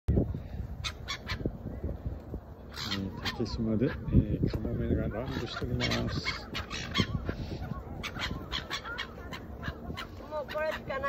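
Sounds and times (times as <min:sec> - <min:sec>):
gulls calling: 0:00.4 - 0:11.0
gull squawks: 0:00.8 - 0:01.5, 0:02.7 - 0:04.1, 0:05.0 - 0:11.0.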